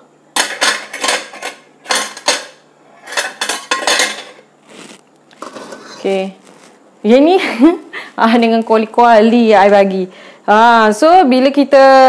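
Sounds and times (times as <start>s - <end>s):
metal spoon scraping a wok: 2.9s - 6.2s.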